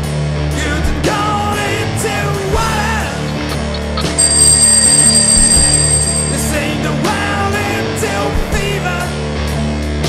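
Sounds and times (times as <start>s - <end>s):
alarm clock bell ringing: 3.7s - 6.7s.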